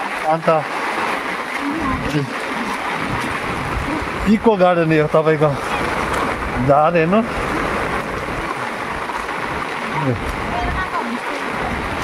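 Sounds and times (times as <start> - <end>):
heavy rain on stone paving: 0.0 - 12.0
rain on an umbrella: 0.0 - 12.0.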